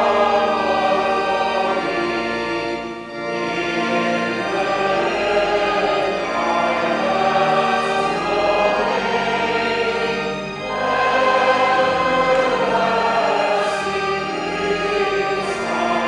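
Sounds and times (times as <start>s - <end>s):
congregation and choir singing a hymn: 0.0s - 16.0s
instrumental accompaniment: 0.0s - 16.0s.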